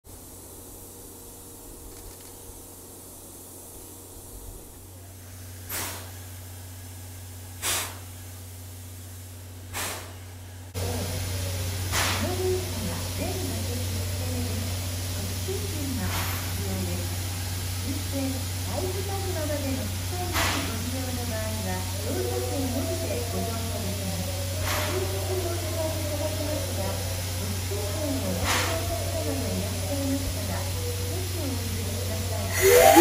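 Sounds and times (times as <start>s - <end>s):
steam locomotive low hum: 0.0s - 33.0s
sharp bursts of steam hiss: 0.1s - 33.0s
people's voices in background: 10.8s - 33.0s.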